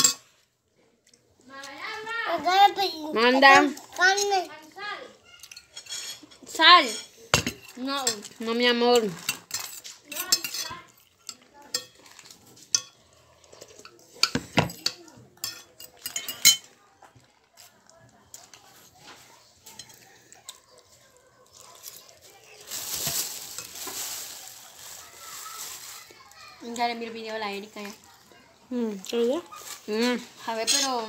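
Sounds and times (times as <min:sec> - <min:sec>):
plastic packet crinkling: 0:21.5 - 0:28.1.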